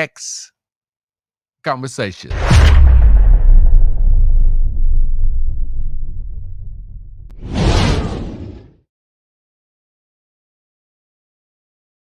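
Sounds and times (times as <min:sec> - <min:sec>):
deep boom: 0:02.3 - 0:08.7
loud rising whoosh: 0:02.3 - 0:08.7.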